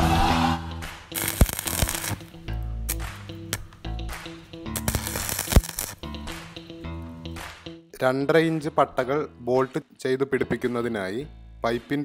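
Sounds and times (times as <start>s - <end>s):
welding arc crackling: 1.1s - 6.3s.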